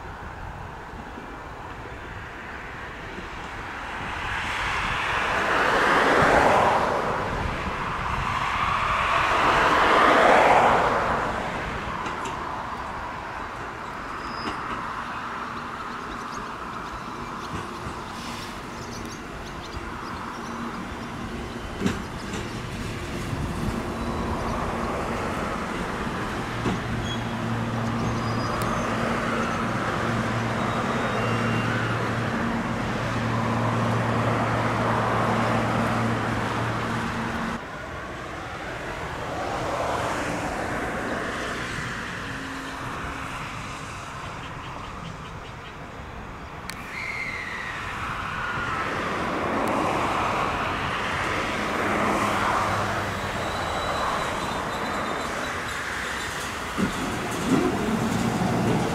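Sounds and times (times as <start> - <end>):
train running noise: 0.0 - 47.0, 49.0 - 58.9
train equipment humming: 11.8 - 37.6.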